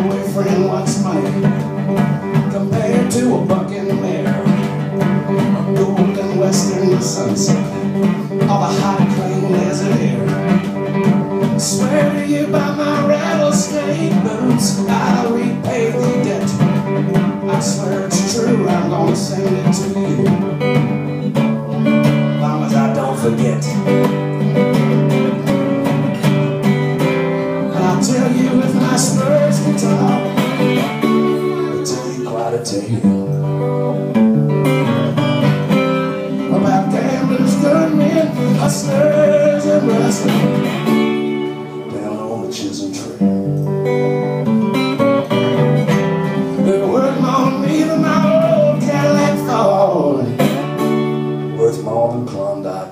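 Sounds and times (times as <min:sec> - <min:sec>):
acoustic guitar blues strumming: 0:00.0 - 0:52.9.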